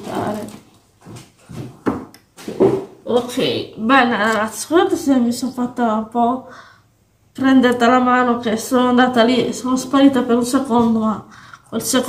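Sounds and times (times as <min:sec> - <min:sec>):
knocks and clatters at a table: 0:01.0 - 0:03.0.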